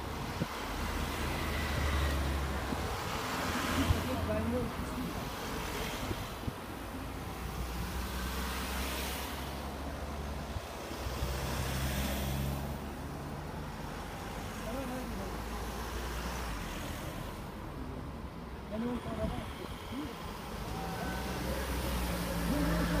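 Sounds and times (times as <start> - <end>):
cars driving past: 0.0 - 23.0.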